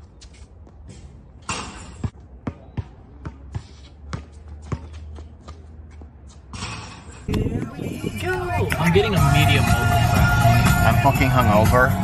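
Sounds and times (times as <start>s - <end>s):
basketball bouncing on hard court: 1.6s - 6.0s.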